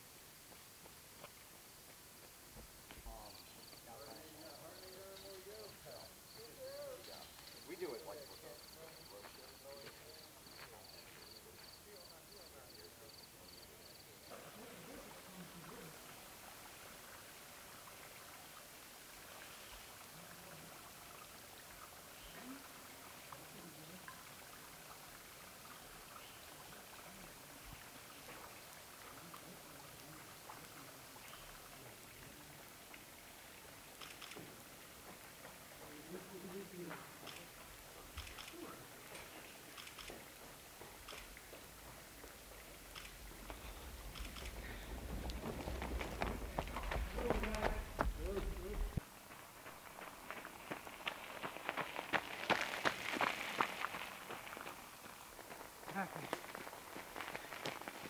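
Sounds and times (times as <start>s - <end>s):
faint steady hiss: 0.0s - 58.0s
bicycle rolling rumble: 41.7s - 58.0s.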